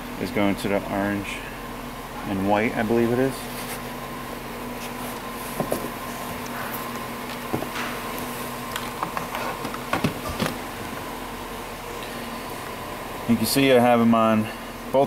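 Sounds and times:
steady mechanical hum: 0.0 - 15.0.

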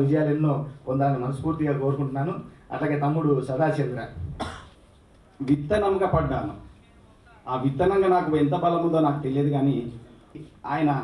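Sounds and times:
man speaking: 0.0 - 4.4, 5.4 - 11.0
man coughing into microphone: 4.2 - 4.9.

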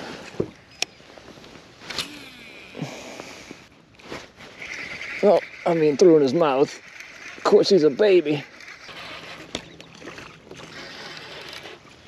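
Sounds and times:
fishing reel whirring: 1.9 - 2.9, 4.5 - 12.0.

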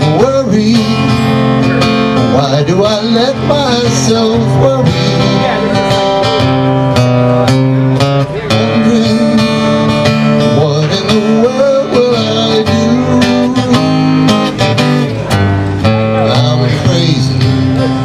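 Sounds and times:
live guitar-led song: 0.0 - 18.0.

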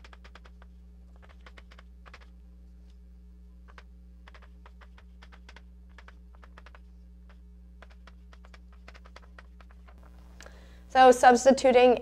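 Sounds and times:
steady low hum: 0.0 - 12.0
chalk tapping on blackboard: 3.7 - 10.0.

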